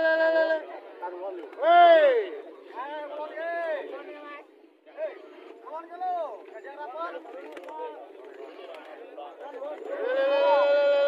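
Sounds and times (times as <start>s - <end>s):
men shouting drawn-out calls: 0.0s - 4.2s, 9.8s - 11.0s
crowd murmur: 0.0s - 11.0s.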